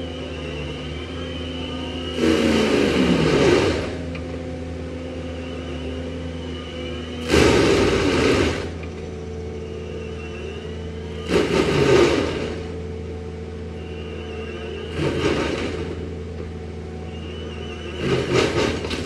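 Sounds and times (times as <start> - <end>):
diesel engine and mulcher drum: 0.0 - 19.0
mulcher grinding tree stump: 0.0 - 19.0.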